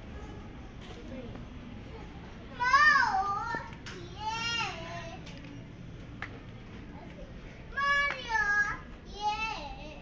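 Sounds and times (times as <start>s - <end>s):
shop background hubbub: 0.0s - 10.0s.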